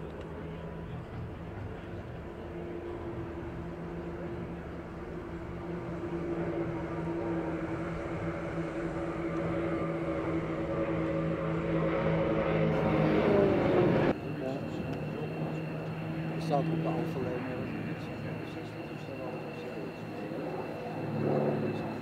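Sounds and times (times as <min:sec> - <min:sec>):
propeller aircraft droning overhead: 0:00.0 - 0:22.0.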